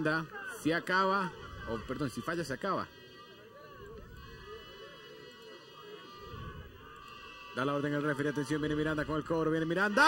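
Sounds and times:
open-air stadium ambience: 0.0s - 10.0s.

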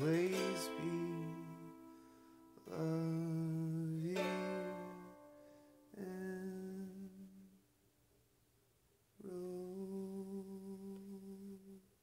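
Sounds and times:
man humming a long note: 2.7s - 5.3s, 6.0s - 7.5s, 9.2s - 11.8s.

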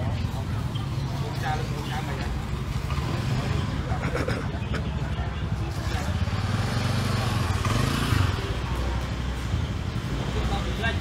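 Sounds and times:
motorbike engine rumble: 0.0s - 11.0s
people talking: 0.0s - 11.0s.

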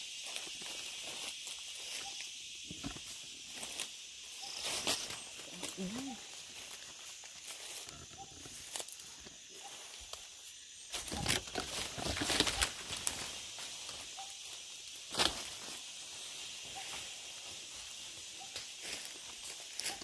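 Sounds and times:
footsteps crunching dry leaves: 0.0s - 2.2s, 2.9s - 20.0s
brushing against undergrowth: 0.0s - 20.0s
high-pitched insect chorus: 0.0s - 20.0s.

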